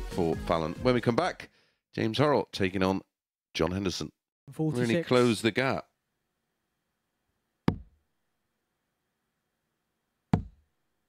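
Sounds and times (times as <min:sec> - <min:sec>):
darts thudding into dartboard: 0:10.4 - 0:10.6.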